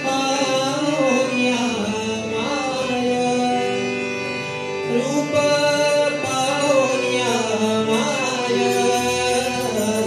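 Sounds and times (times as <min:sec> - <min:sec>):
harmonium: 0:00.0 - 0:10.0
man singing devotional song: 0:00.0 - 0:10.0.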